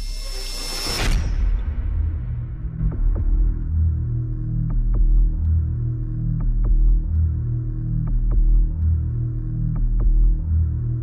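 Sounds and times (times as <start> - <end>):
deep bass rumble: 1.2 - 11.0.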